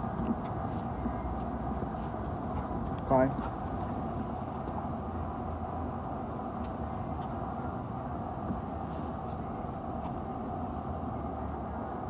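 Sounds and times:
distant traffic rumble: 0.0s - 12.0s.

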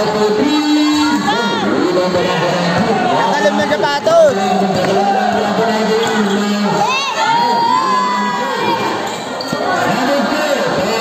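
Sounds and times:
spectators shouting and cheering: 0.0s - 11.0s.

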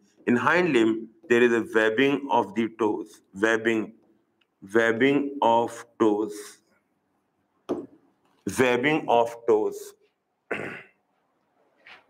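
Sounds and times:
man coughing: 10.5s - 11.0s.

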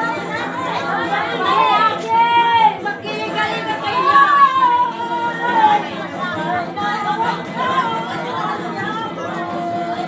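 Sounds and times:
crowd chattering and calling out: 0.0s - 10.0s
music: 0.0s - 10.0s.

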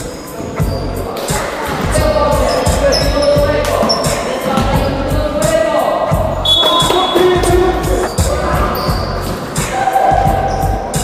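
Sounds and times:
players' voices: 0.0s - 11.0s
basketball bouncing on gym floor: 6.5s - 7.7s.

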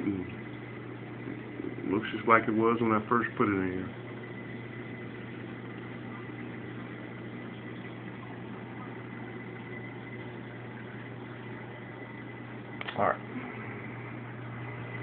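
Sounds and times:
high whine from aquarium equipment: 0.0s - 15.0s
low electrical hum: 0.0s - 15.0s.

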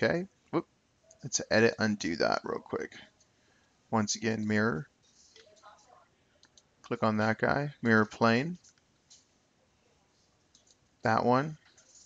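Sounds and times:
computer mouse clicks: 6.4s - 6.8s, 8.5s - 9.3s, 10.4s - 10.9s.

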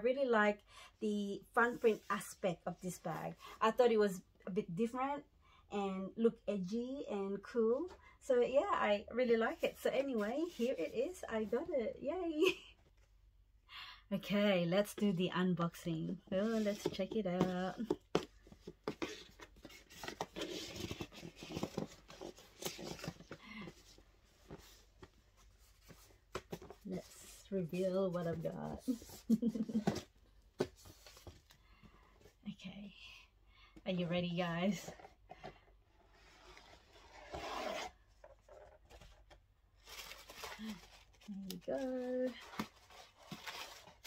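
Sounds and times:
paper and cardboard rustling: 16.3s - 31.6s, 36.1s - 44.0s
box scrapes and taps: 16.4s - 25.1s.

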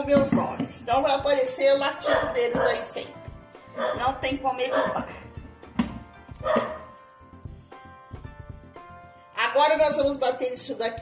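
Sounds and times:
background music: 0.0s - 11.0s
dog barking: 2.0s - 3.0s, 3.8s - 5.3s, 6.4s - 7.0s.

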